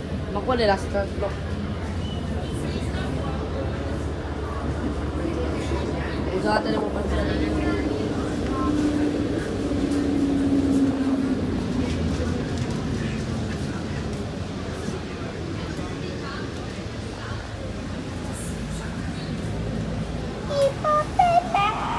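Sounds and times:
bus engine and road rumble: 0.0s - 21.9s
faint passengers' voices: 0.0s - 21.9s.

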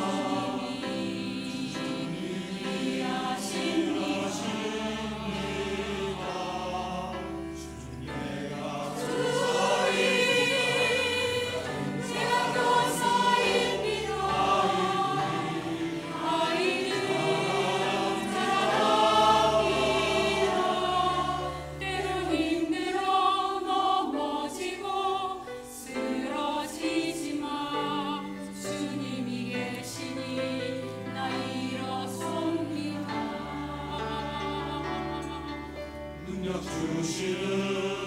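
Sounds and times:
choir singing in parts: 0.0s - 38.0s.

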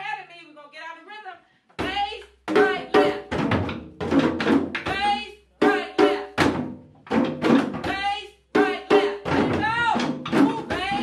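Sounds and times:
hand drums and wooden drums struck: 1.8s - 11.0s.

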